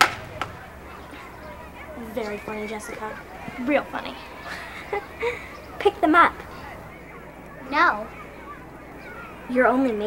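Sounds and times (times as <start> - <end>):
sudden sharp sound: 0.0 - 1.8
faint outdoor background: 0.0 - 10.0.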